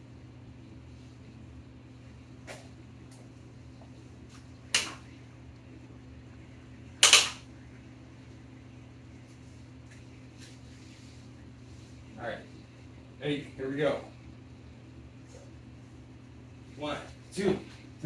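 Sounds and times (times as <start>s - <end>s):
low fan-like hum: 0.0s - 18.0s.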